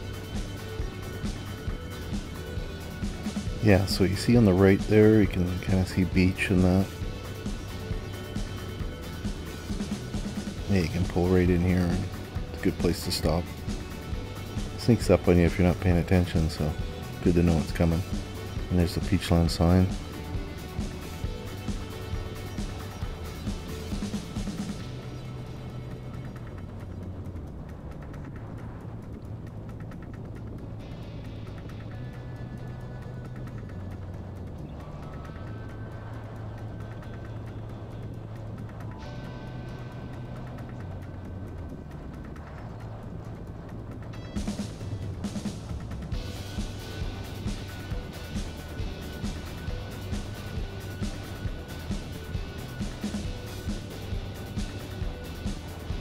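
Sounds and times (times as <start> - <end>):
held low synth tones: 0.0 - 56.0
pulsing beat: 0.0 - 56.0.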